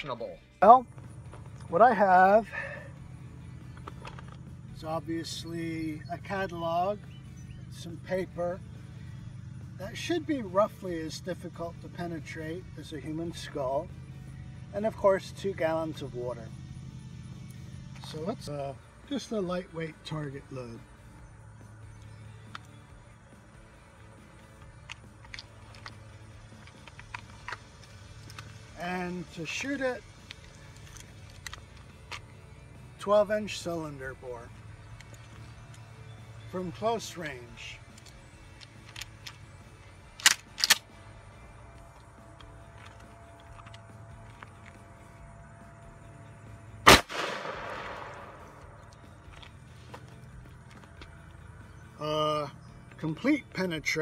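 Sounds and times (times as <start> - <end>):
sharp clicks: 40.1 - 41.0
shotgun shot: 46.9 - 48.8.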